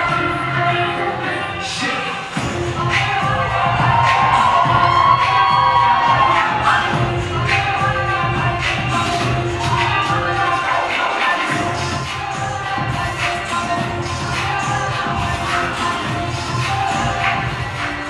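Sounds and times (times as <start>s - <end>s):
dance music over sound system: 0.0s - 18.0s
audience cheering and shouting: 2.4s - 18.0s.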